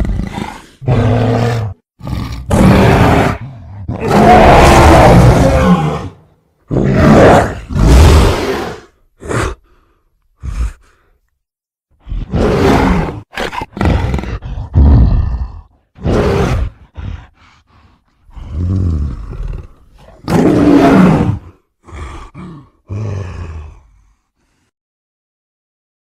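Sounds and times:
monster roars: 0.0 - 9.6, 12.0 - 17.3.

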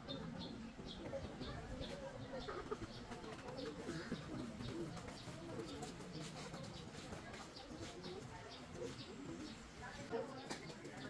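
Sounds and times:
birds calling: 0.0 - 11.0
low irregular murmur: 0.0 - 11.0.

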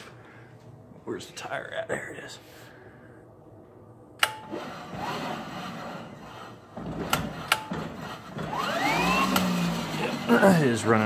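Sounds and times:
electric motor whine: 8.4 - 10.4.

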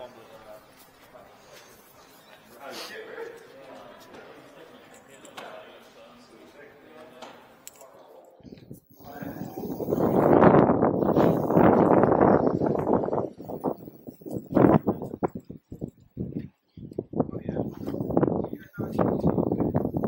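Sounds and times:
wind noise on microphone: 8.4 - 20.0.

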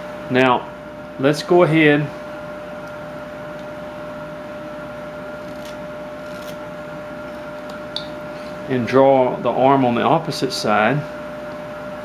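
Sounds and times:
thin constant whine: 0.0 - 12.0
background hum: 0.4 - 12.0.

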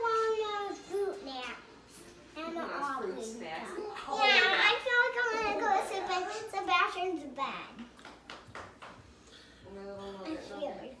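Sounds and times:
young child talking: 3.9 - 7.9.

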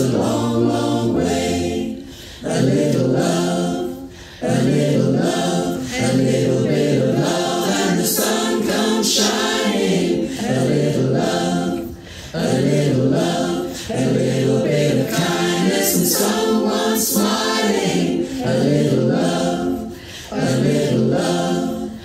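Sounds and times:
mixed choir singing a cappella: 0.0 - 22.0.

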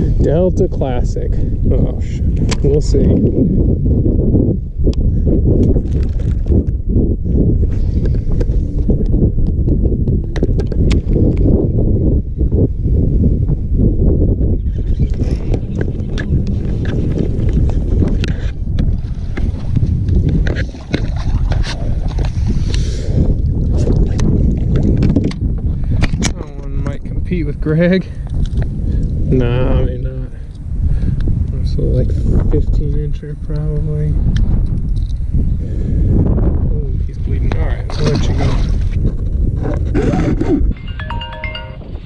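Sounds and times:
wind rumbling on microphone: 0.0 - 42.0.

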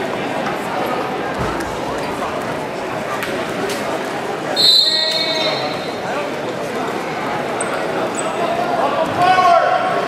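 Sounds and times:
crowd chatter in a gym: 0.0 - 10.0
referee's whistle blast: 4.6 - 5.8.

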